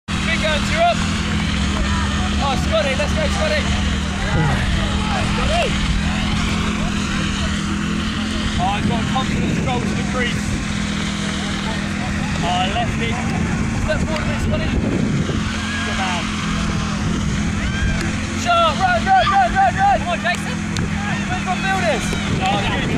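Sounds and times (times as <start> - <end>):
steady low hum: 0.1 - 22.9
distant people shouting: 0.2 - 9.4, 11.0 - 22.9
faint distant voices calling: 0.2 - 22.9
low rumble: 1.0 - 20.1.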